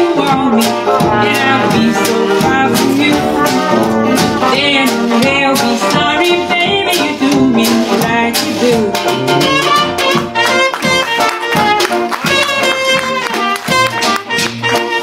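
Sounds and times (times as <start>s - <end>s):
strummed banjo: 0.0s - 15.0s
cornet melody: 0.6s - 6.4s, 8.7s - 13.2s.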